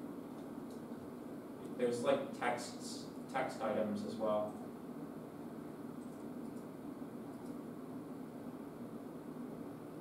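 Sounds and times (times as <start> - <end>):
low even hum: 0.0 - 10.0.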